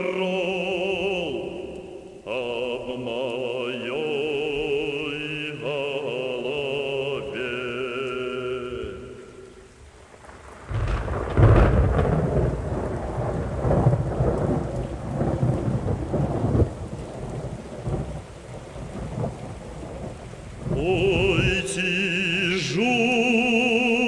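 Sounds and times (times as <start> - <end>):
person singing with vibrato: 0.0 - 9.7, 20.7 - 24.0
steady rain: 0.0 - 24.0
thunder rumbling: 8.7 - 23.0.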